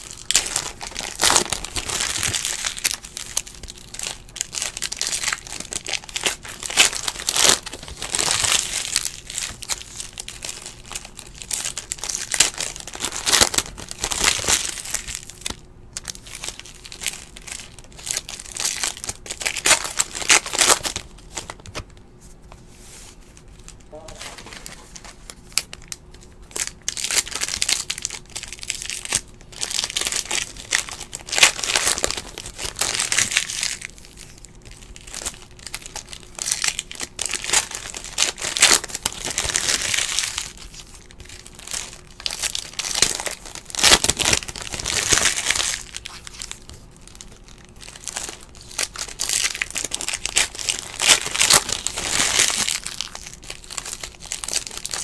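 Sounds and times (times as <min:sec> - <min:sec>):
foil wrappers tearing and crinkling: 0:00.0 - 0:21.9, 0:23.6 - 0:55.0.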